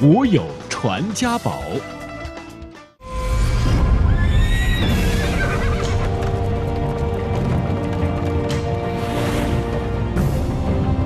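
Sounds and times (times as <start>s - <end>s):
theme music with low rumble: 0.0s - 11.0s
horse whinnying: 4.1s - 6.5s.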